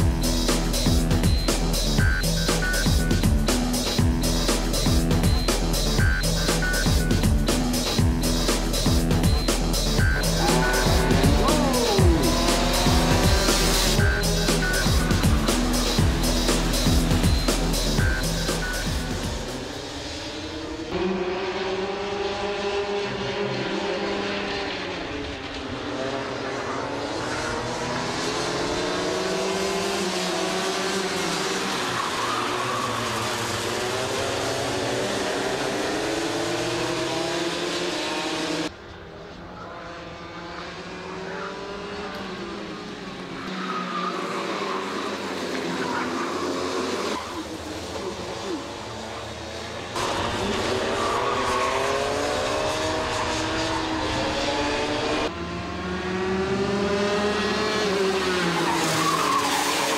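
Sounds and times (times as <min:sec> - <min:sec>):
electronic music with steady beat: 0:00.0 - 0:19.9
kart engines revving: 0:00.0 - 0:59.9.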